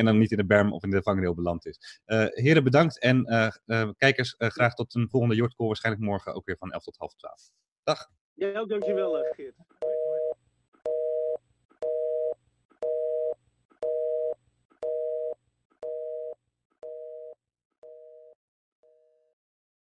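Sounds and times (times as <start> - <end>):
telephone busy signal beeps: 8.8 - 14.4.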